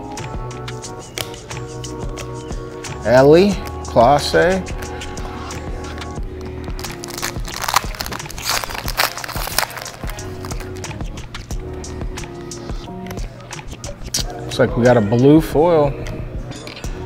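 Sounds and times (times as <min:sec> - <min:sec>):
music with steady held tones: 0:00.0 - 0:17.0
foil wrapper crinkling and tearing: 0:06.8 - 0:10.9.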